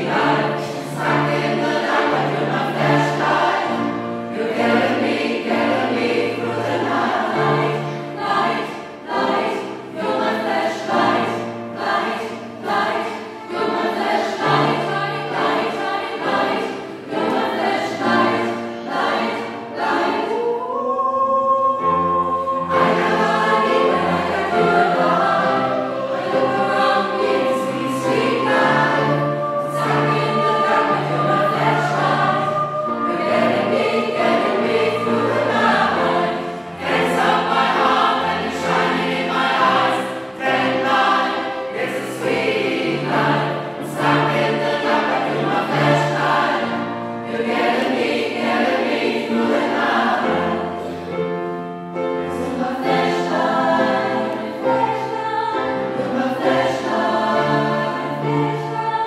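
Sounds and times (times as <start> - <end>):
choir singing pop song: 0.0 - 59.0.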